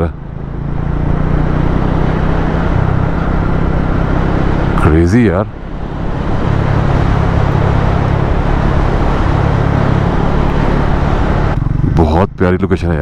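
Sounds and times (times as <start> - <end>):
motorcycle engine cruising: 0.0 - 13.0
wind and road noise: 0.0 - 13.0.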